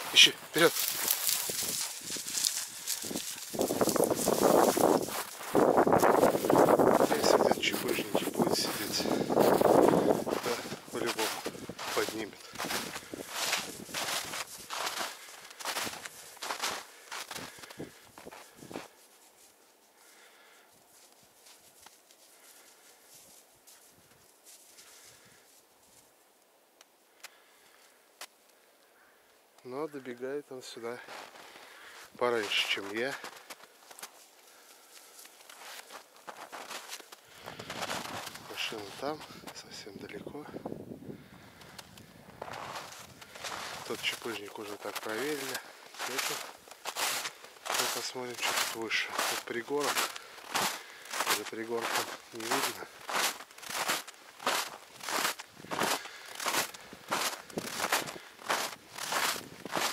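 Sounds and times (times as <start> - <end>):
brush rustling against clothing: 0.0 - 16.4, 42.6 - 50.4
footsteps crunching through snow: 0.0 - 26.2, 30.6 - 40.6, 41.4 - 59.9.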